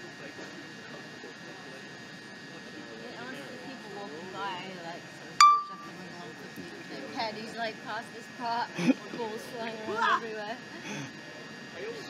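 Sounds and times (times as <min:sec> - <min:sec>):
background chatter of voices: 0:00.0 - 0:12.0
sharp ringing clink: 0:05.4 - 0:05.9.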